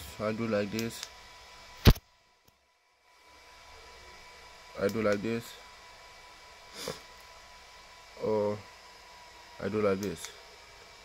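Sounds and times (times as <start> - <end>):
short sniff: 6.7 - 7.1.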